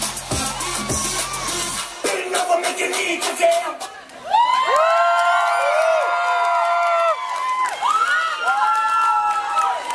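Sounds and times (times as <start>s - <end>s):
children cheering: 0.3s - 1.8s, 4.2s - 9.9s.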